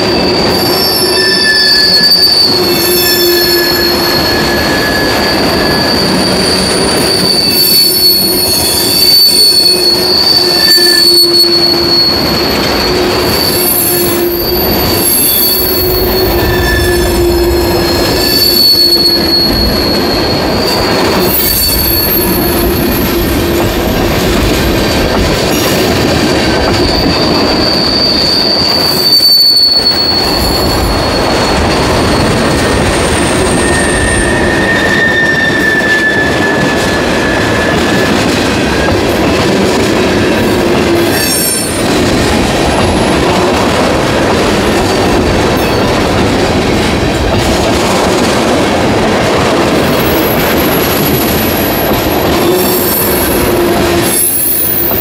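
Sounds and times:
train wheels squealing: 0.0 - 47.1, 49.6 - 55.0
running noise of rail cars: 0.0 - 55.0.

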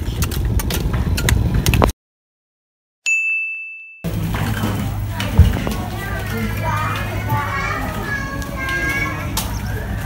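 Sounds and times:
children calling and chattering: 4.4 - 10.0
low rumble: 5.3 - 7.2.

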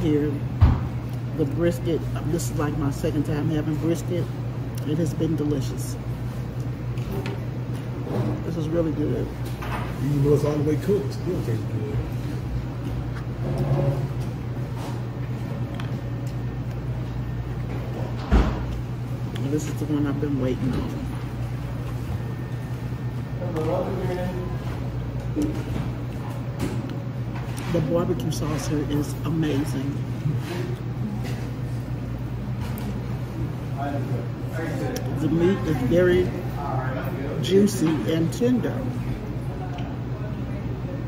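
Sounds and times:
restaurant room hum: 0.0 - 41.0.

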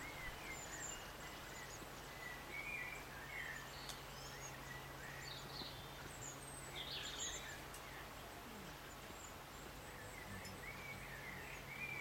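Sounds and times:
faint background hiss: 0.0 - 12.0
small birds chirping: 0.0 - 12.0.

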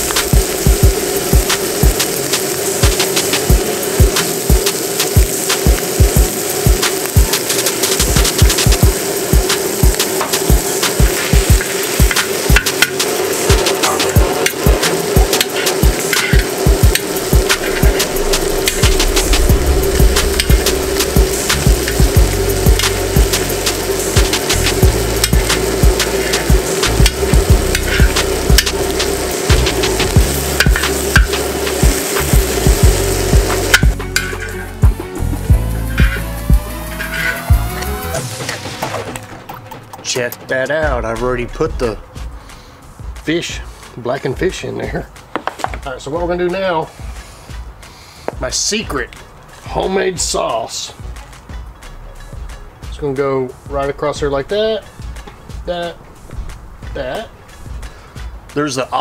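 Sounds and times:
fish sizzling in a pan: 0.0 - 38.4
background music with steady beat: 0.0 - 59.0.

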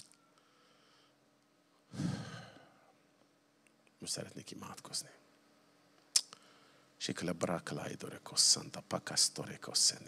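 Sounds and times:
man sighing into microphone: 1.9 - 2.9.

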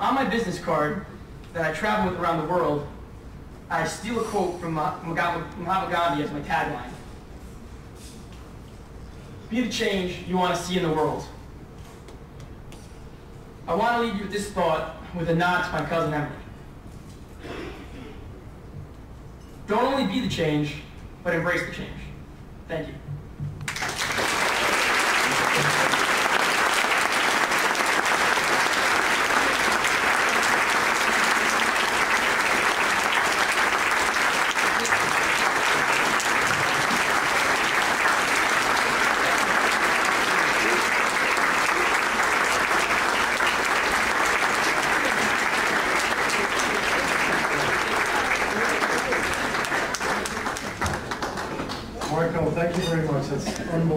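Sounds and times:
audience applauding: 23.7 - 52.2.

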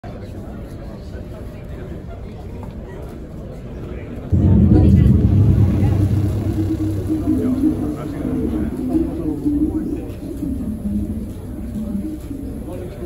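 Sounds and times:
loud low rumbling sound effect: 4.3 - 11.2.

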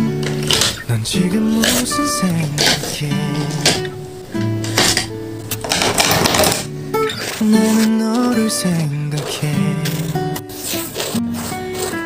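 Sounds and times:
soft guitar music: 0.0 - 12.0
markers rattling in pen holder: 0.2 - 3.9, 4.6 - 12.0.

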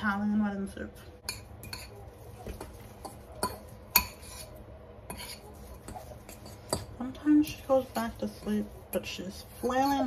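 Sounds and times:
utensils and dishes clinking: 1.2 - 10.0.

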